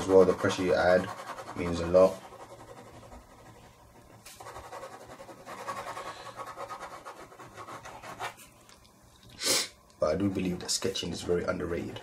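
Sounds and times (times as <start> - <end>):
pen scratching across paper: 0.0 - 8.5.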